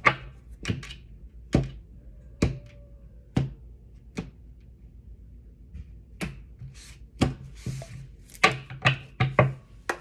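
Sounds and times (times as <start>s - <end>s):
cards sliding rub: 6.7s - 8.2s.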